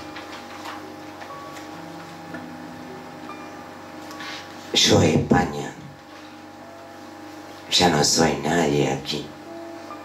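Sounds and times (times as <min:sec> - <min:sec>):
paper rustling: 0:00.0 - 0:01.8.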